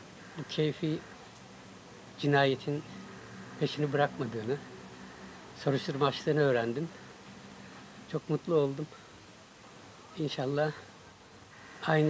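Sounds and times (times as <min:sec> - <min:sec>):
man speaking: 0:00.4 - 0:01.1, 0:02.2 - 0:02.9, 0:03.6 - 0:04.7, 0:05.6 - 0:07.0, 0:08.1 - 0:09.0, 0:10.2 - 0:10.9.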